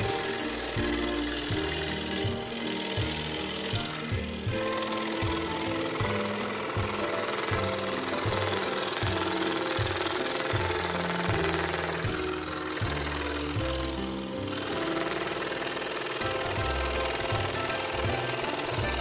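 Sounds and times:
background music with beat: 0.0 - 19.0
scroll saw cutting plywood: 0.0 - 19.0.

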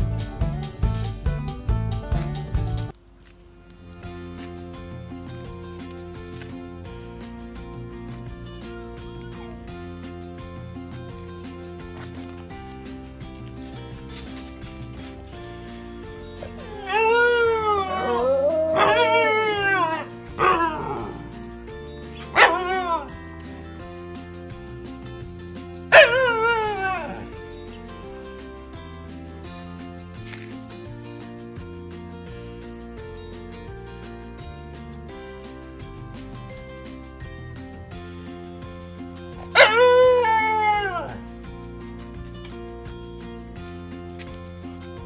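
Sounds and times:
soft music: 0.0 - 45.0
dog howling and yelping: 16.4 - 21.4, 22.2 - 23.2, 25.9 - 27.4, 39.4 - 41.2.

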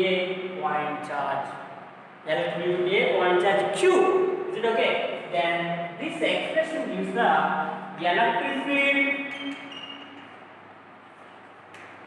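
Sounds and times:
man speaking: 0.0 - 9.5
chalk squeak: 9.1 - 10.4.

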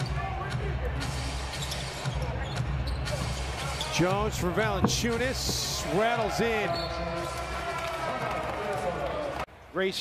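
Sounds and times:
basketball dribbled on hardwood: 4.3 - 5.9.

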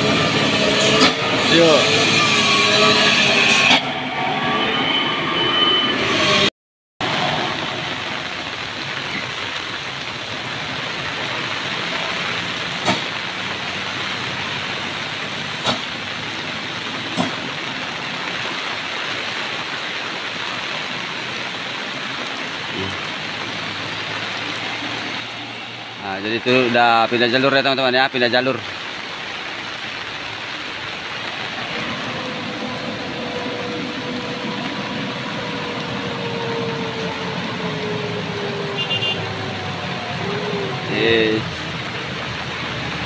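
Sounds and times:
truck passing on wet road: 0.0 - 43.0
steady rain hiss: 7.0 - 43.0.

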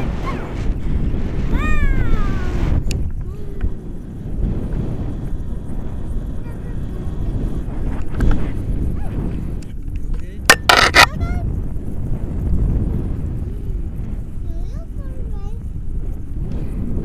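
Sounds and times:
wind rushing over microphone: 0.0 - 17.0
child's high-pitched cry: 1.5 - 2.6, 3.2 - 3.8, 13.4 - 13.8.

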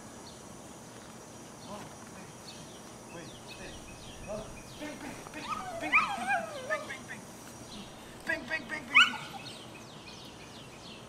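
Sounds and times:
dog yip rising in pitch: 5.4 - 6.9, 8.9 - 9.5.

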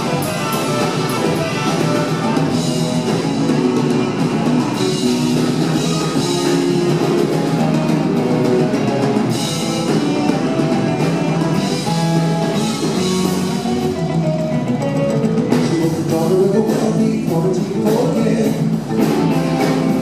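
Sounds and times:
drum kit: 0.0 - 20.0
electric guitars: 0.0 - 20.0
keyboards: 0.0 - 20.0.

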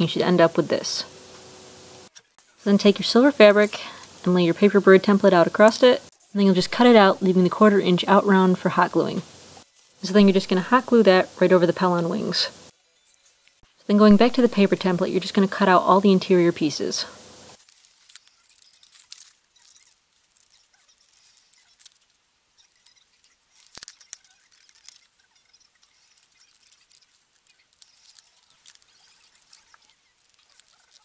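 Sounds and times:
paper rustling: 17.5 - 31.0
scissors snipping paper: 17.6 - 31.0.

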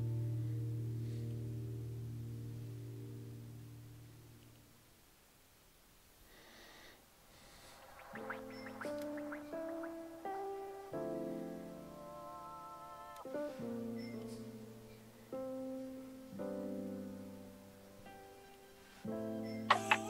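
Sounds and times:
piano chords: 0.0 - 4.8, 7.4 - 20.0.

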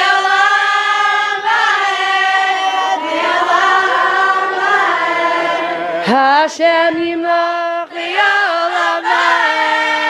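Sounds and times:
choir singing slow song: 0.0 - 10.0.

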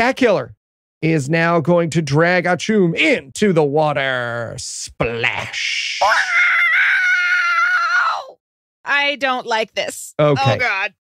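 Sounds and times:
person mock screaming: 5.0 - 8.4.

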